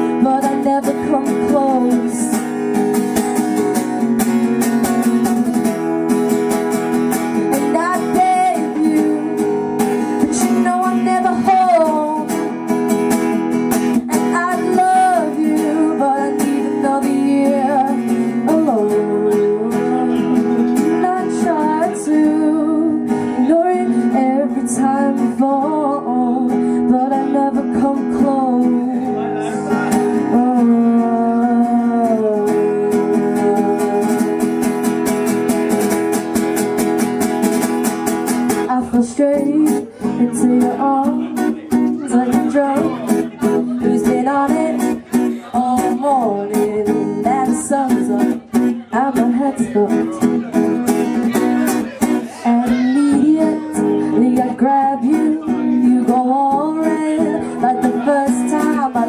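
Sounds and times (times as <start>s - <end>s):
woman singing: 0.0s - 29.2s, 30.1s - 35.1s, 38.5s - 50.5s, 52.0s - 59.0s
acoustic guitar strumming: 0.0s - 59.0s.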